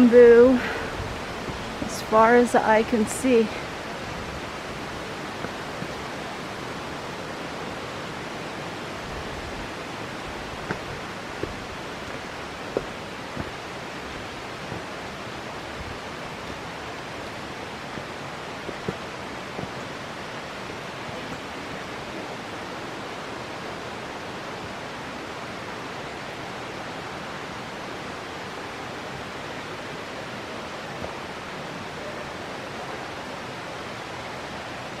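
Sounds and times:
steady outdoor rushing noise: 0.0s - 35.0s.

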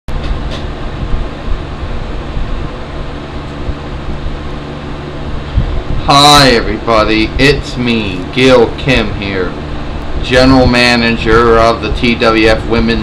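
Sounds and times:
fan hum and hiss: 0.1s - 13.0s
low rumbling: 0.1s - 13.0s.

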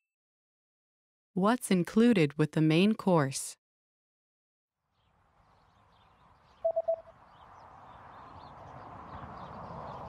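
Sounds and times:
short beeps: 6.6s - 7.1s.

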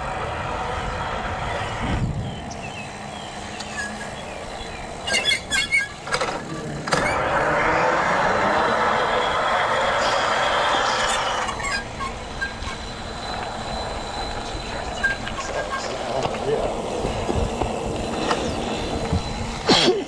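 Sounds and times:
rush of wind and tyre noise: 0.0s - 19.7s
bike squeaks: 1.4s - 20.0s.

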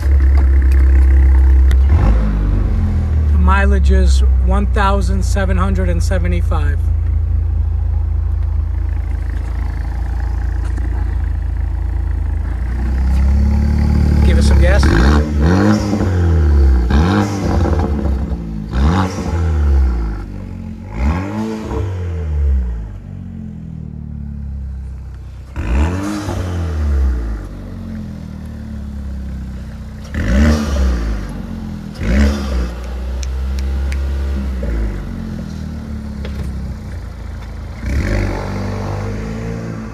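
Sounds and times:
engine idling and revving: 0.0s - 39.9s.

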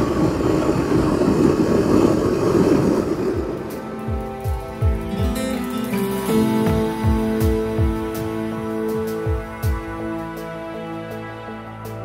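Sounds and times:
wind rush while riding: 0.0s - 10.3s
music: 0.2s - 12.0s.

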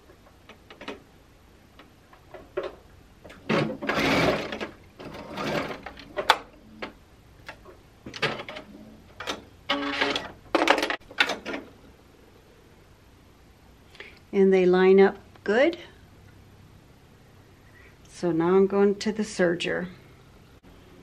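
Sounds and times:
sewing machine running: 3.5s - 6.0s.

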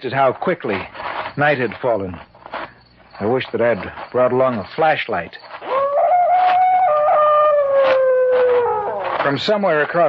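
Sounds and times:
dog howling: 5.6s - 9.4s.

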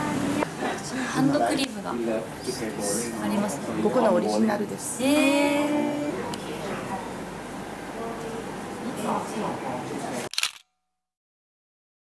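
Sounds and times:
camera shutter click: 10.3s - 10.7s.

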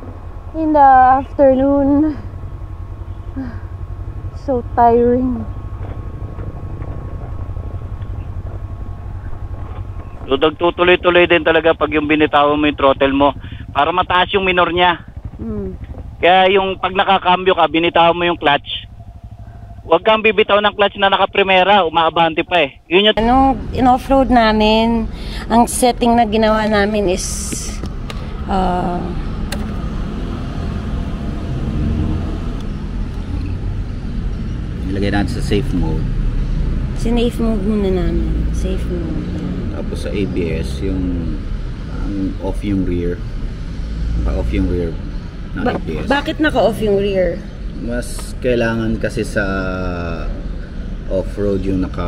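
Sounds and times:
motorcycle engine rumble: 0.0s - 52.0s.

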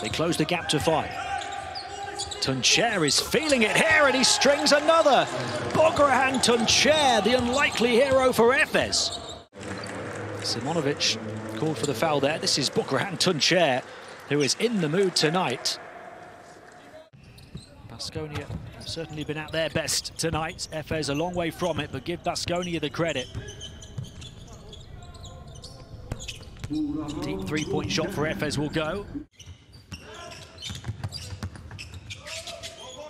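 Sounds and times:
low hum of empty arena: 0.0s - 30.3s
players' court sounds: 0.0s - 33.0s.

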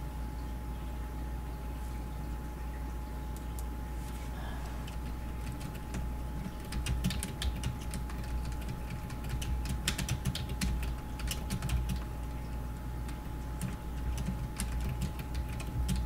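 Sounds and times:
faint electrical hum: 0.0s - 16.0s
keyboard typing clicks: 4.8s - 12.1s, 13.0s - 16.0s.

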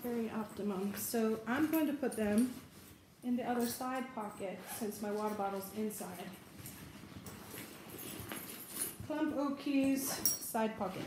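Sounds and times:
bag rustling: 0.0s - 11.0s.

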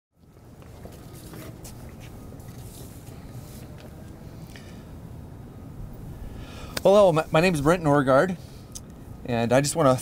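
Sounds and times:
low outdoor rumble: 0.2s - 10.0s.

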